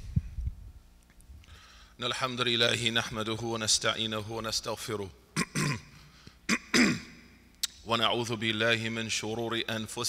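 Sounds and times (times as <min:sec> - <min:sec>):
man clearing his throat: 0:05.4 - 0:07.3.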